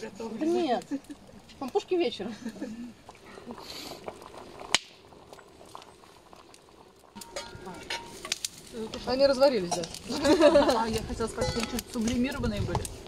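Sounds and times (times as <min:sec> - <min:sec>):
brew boiling in metal pot: 0:00.0 - 0:13.0.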